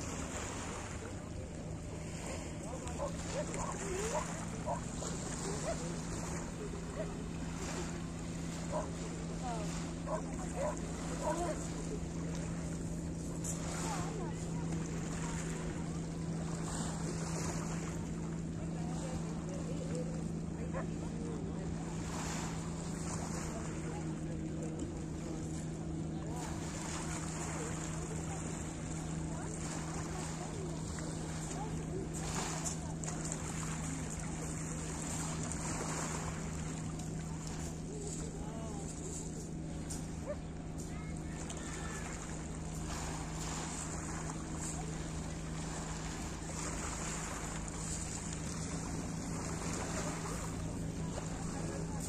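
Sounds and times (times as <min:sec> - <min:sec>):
constant low hum: 0:00.0 - 0:52.0
faint distant voices: 0:00.0 - 0:52.0.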